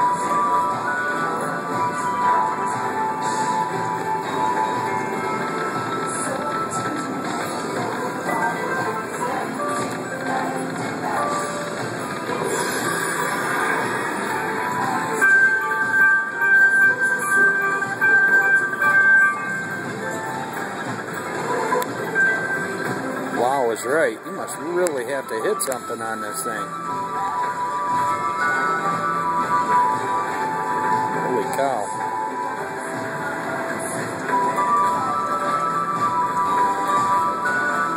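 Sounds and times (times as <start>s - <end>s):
other slot machines: 0.0s - 37.9s
slot machine bonus music: 9.5s - 37.9s.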